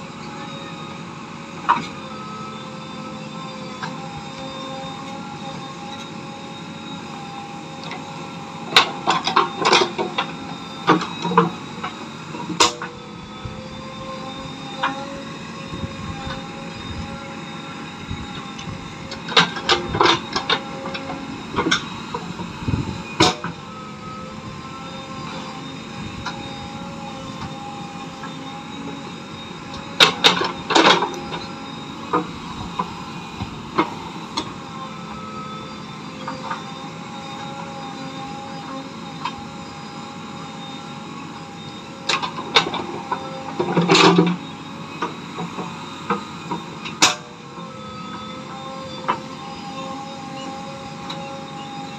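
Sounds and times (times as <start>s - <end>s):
diesel engine running: 0.0s - 51.9s.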